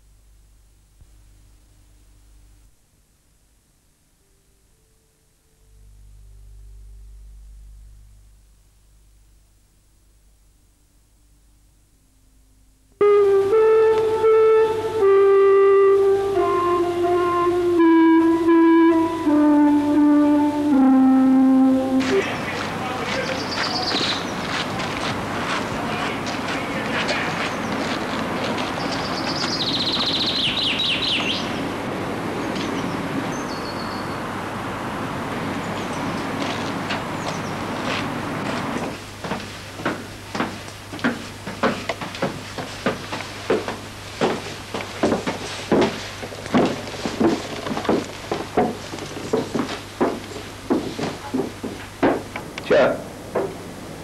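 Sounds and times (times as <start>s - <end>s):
low steady hum: 0.0s - 29.3s
birds chirping: 21.8s - 34.4s, 37.1s - 37.9s
footsteps crunching on gravel: 22.0s - 30.3s, 36.4s - 51.8s
footsteps climbing stairs: 22.0s - 30.4s, 36.4s - 52.5s.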